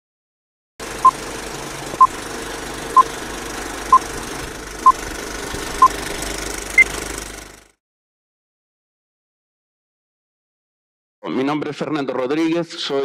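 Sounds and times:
film projector running: 0.8s - 7.8s.

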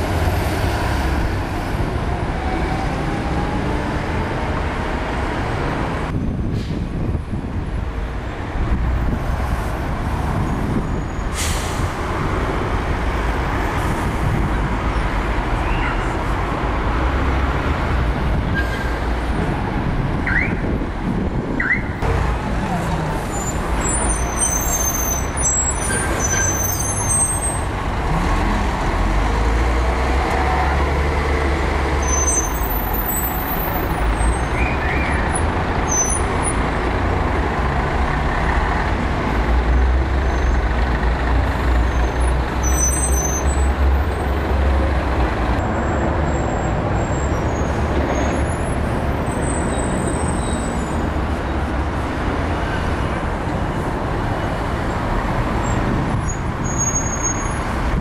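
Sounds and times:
bus diesel engines rumbling: 0.0s - 58.0s
town traffic: 0.0s - 58.0s.

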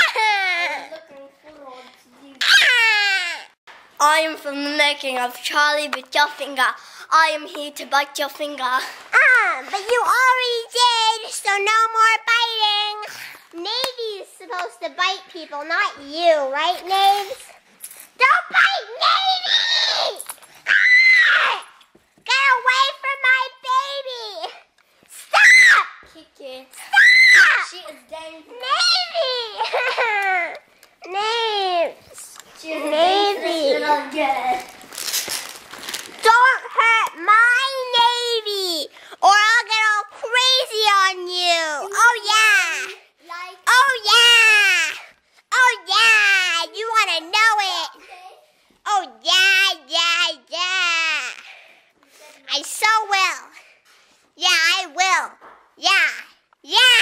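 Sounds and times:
girl screaming shrilly: 2.4s - 3.6s, 18.2s - 21.7s, 25.3s - 26.1s, 26.8s - 27.8s, 43.7s - 45.0s.

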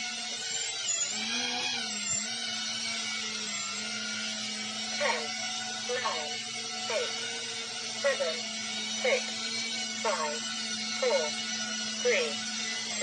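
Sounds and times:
drone motors whining: 0.0s - 13.0s.

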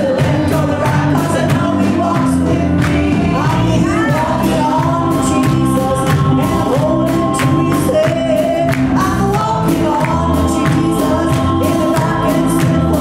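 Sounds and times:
group singing gospel song: 0.0s - 13.0s
musical accompaniment with beat: 0.0s - 13.0s.

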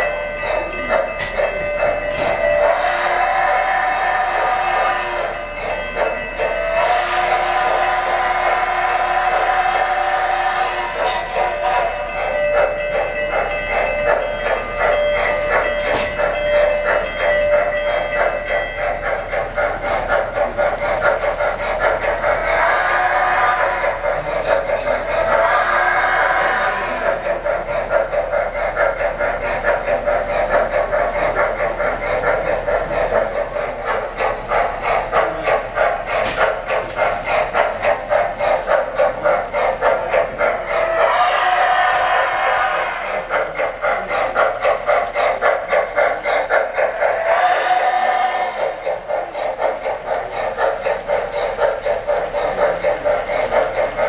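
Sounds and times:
rhythmic steam chuff: 0.0s - 54.0s
steam whistle blowing: 1.9s - 12.4s, 22.2s - 24.2s, 40.7s - 43.4s, 46.9s - 48.8s.

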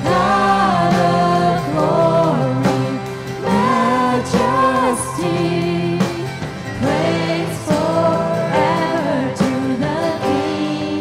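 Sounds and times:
drums: 0.0s - 11.0s
guitars: 0.0s - 11.0s
keyboard: 0.0s - 11.0s.

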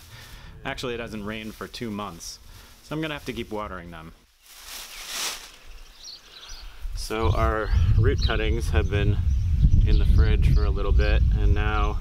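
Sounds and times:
faint bird chirps: 4.4s - 8.3s
brief rustle: 4.5s - 5.7s.

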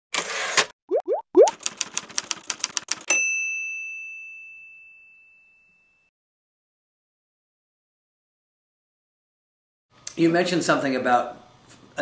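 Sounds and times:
bright bell ding: 3.1s - 6.1s.

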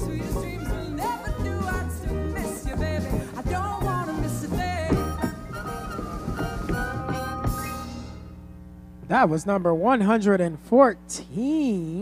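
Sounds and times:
pop ballad over sound system: 0.0s - 8.2s
tap shoes striking stage: 2.6s - 7.7s.

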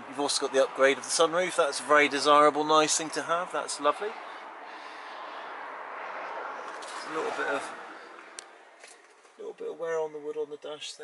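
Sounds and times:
road traffic rushing: 0.0s - 9.9s.

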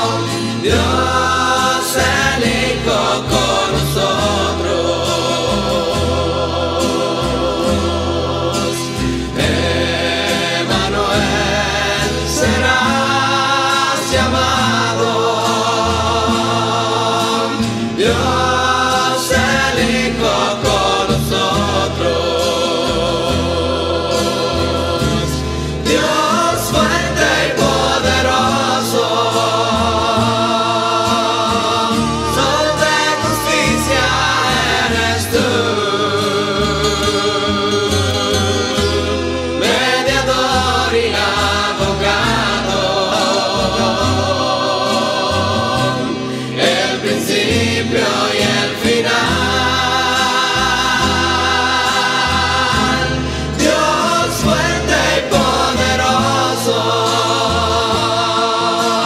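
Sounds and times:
guitar accompaniment: 0.0s - 59.0s
mixed choir singing: 0.0s - 59.0s.

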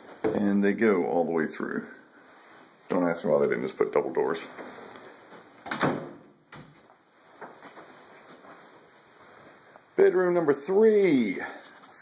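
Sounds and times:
door creaking: 5.6s - 6.8s.

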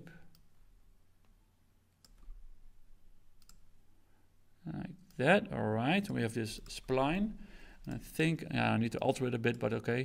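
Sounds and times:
computer mouse clicks: 2.0s - 2.4s, 3.4s - 3.7s.

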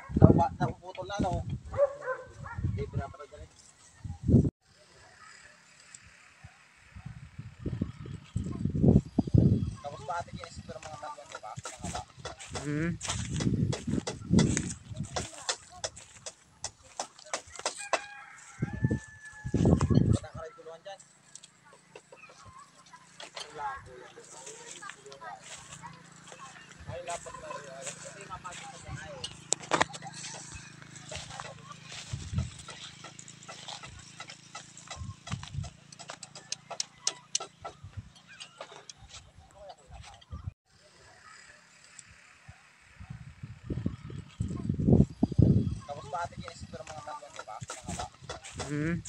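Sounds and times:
indistinct distant voices: 3.2s - 49.0s
microphone handling clicks and rustles: 10.3s - 17.8s, 18.8s - 20.3s, 28.0s - 40.5s.

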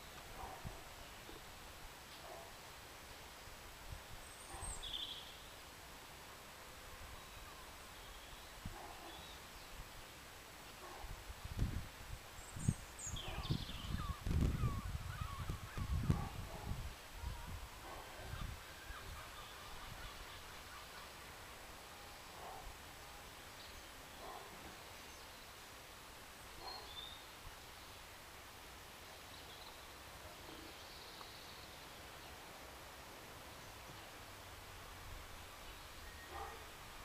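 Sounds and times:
faint bird chirps: 4.2s - 5.6s, 7.0s - 9.8s, 12.4s - 16.4s, 26.4s - 27.4s, 35.6s - 36.9s
wind gusts on microphone: 11.0s - 20.5s.

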